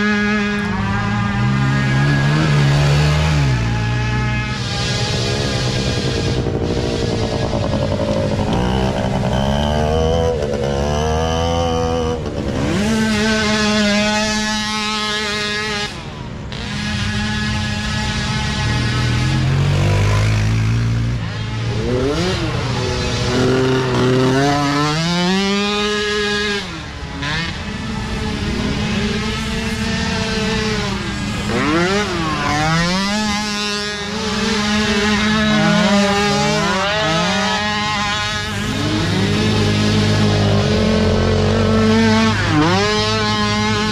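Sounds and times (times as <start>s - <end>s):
small quad engines revving: 0.0s - 43.9s.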